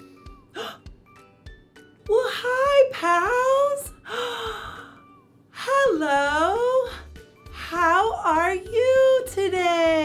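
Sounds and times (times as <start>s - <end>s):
woman gasping: 0.5s - 1.0s, 4.0s - 5.1s.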